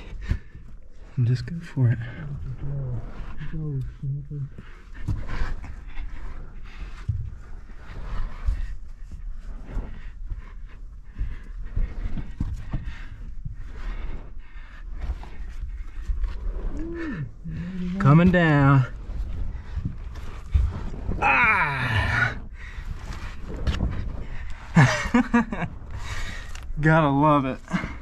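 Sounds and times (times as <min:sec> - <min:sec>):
scraping and rustling against soil: 0:00.0 - 0:28.0
person grunting: 0:21.2 - 0:22.4.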